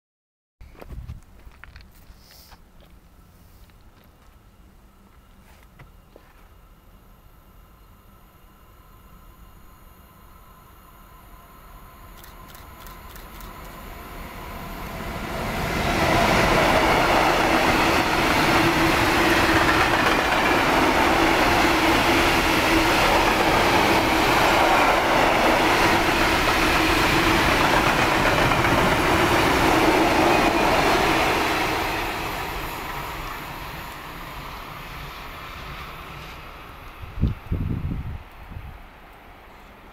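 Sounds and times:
train wheels on rails: 0:11.9 - 0:39.9.

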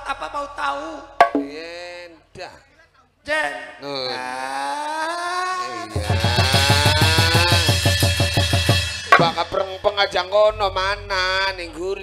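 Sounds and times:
fast drum hits: 0:01.2 - 0:01.6, 0:05.9 - 0:10.0.

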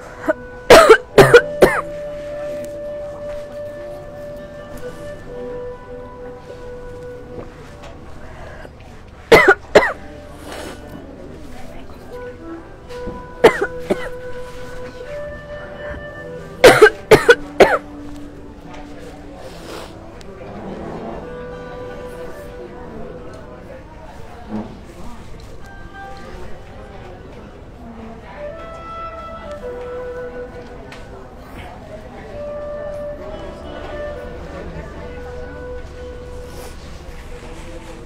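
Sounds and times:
soft background music: 0:00.0 - 0:38.0
person coughing: 0:00.2 - 0:01.9, 0:09.3 - 0:10.0, 0:13.4 - 0:14.2, 0:16.6 - 0:17.8.

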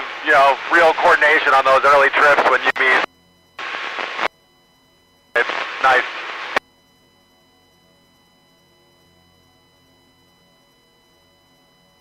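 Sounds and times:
radio static bursts: 0:00.0 - 0:04.3, 0:05.4 - 0:06.6
garbled radio speech: 0:00.2 - 0:03.7, 0:05.4 - 0:06.6.

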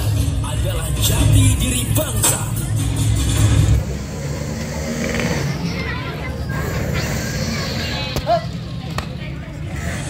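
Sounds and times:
background music: 0:00.0 - 0:03.9
motorcycle engine running: 0:00.0 - 0:10.0
open-air noise: 0:00.0 - 0:10.0.

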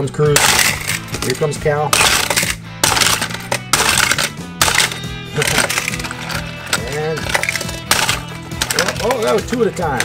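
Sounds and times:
background music: 0:00.0 - 0:10.0
toy cars clattering on plastic track: 0:00.4 - 0:10.0.

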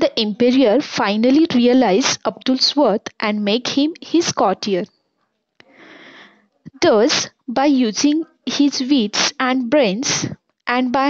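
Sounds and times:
person speaking: 0:00.0 - 0:04.9, 0:05.6 - 0:11.0
person breathing in: 0:05.6 - 0:06.5.

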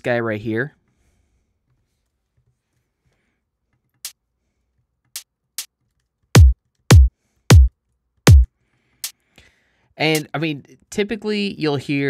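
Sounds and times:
deep kick drum hits: 0:06.4 - 0:07.7, 0:08.3 - 0:08.5
hi-hat ticks: 0:08.3 - 0:09.2.

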